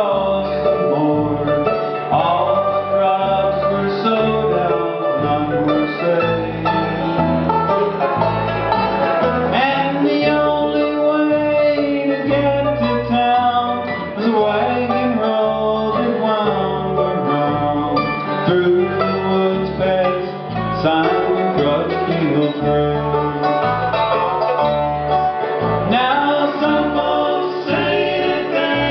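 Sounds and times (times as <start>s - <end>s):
acoustic guitars: 0.0s - 28.9s
banjo: 0.0s - 28.9s
bass line: 0.0s - 28.9s
mandolin: 0.0s - 28.9s.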